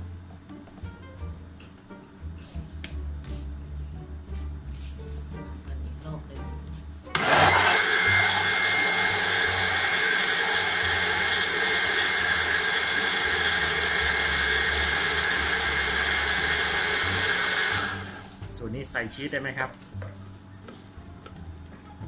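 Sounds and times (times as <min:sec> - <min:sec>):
electric blender running: 0:07.1 - 0:18.5.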